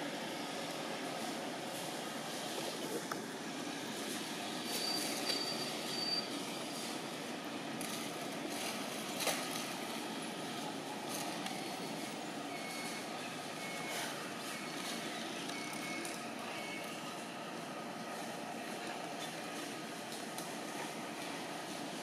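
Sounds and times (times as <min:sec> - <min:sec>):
outdoor background noise: 0:00.0 - 0:22.0.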